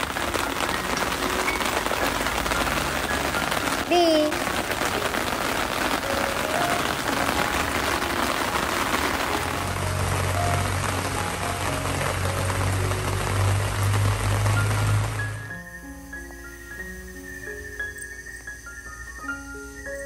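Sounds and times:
background music: 0.0 - 20.0
heavy rain falling: 0.0 - 20.0.

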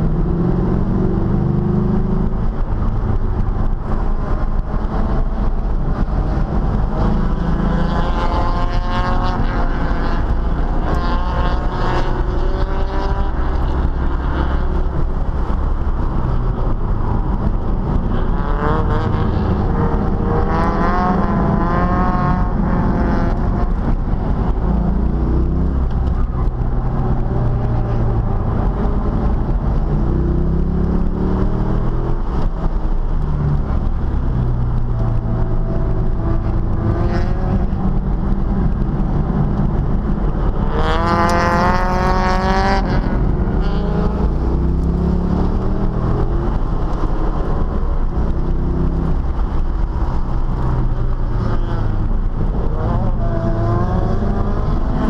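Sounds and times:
car engine revving: 0.0 - 55.0
road and wind noise: 0.0 - 55.0.

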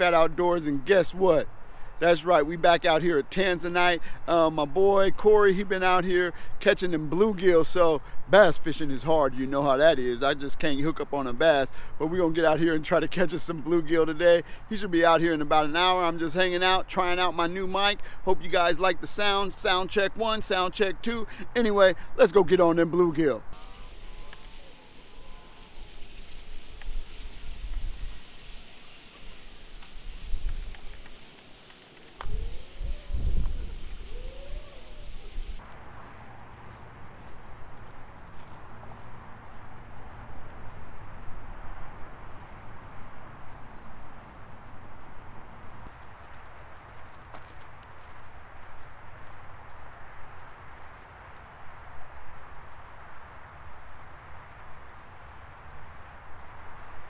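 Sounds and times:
steady outdoor hiss: 0.0 - 57.0
footsteps walking outdoors: 16.6 - 43.9, 44.8 - 52.6.

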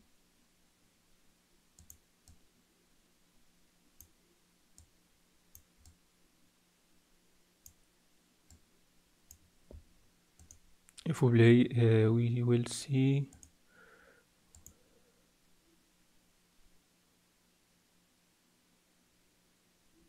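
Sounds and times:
faint low hum: 0.0 - 20.0
computer mouse clicking: 1.8 - 2.4, 4.0 - 4.2, 4.8 - 6.0, 10.4 - 11.0, 13.3 - 13.6, 14.5 - 14.8.

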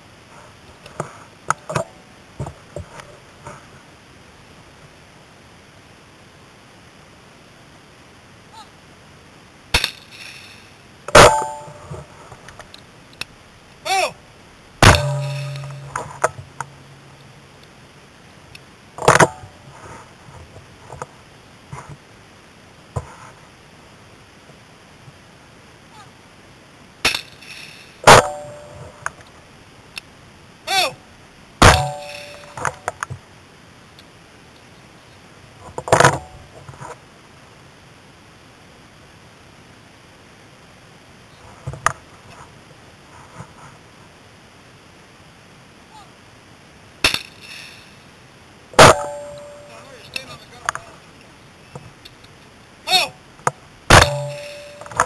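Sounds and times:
shotgun metallic clanks and clicks: 14.8 - 16.7, 31.6 - 32.9, 53.9 - 55.0.

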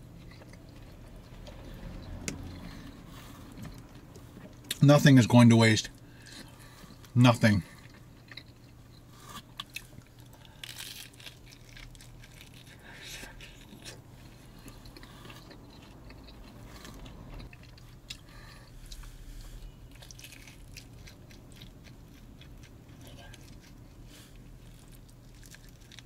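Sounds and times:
person chewing crunchy food: 0.0 - 4.9, 5.9 - 26.0.

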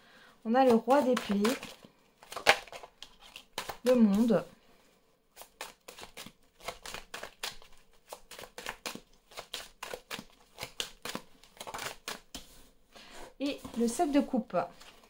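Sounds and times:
cards clicking and rustling: 0.6 - 4.4, 5.4 - 12.6.

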